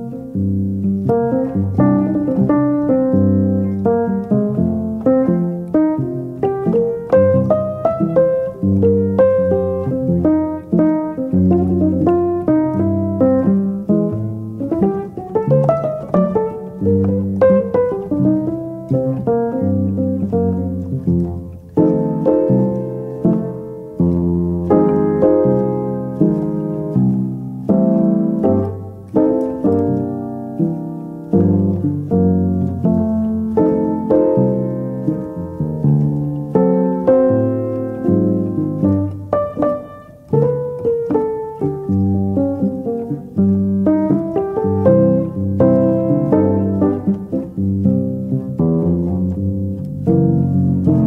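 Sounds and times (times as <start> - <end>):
piano music: 0.0 - 51.0.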